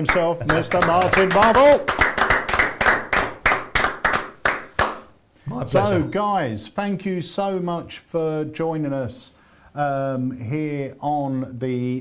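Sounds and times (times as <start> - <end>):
people clapping: 0.0 - 5.1.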